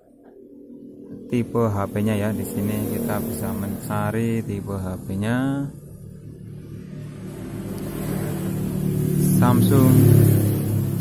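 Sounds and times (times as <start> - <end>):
vehicle engine running: 1.0 - 11.0.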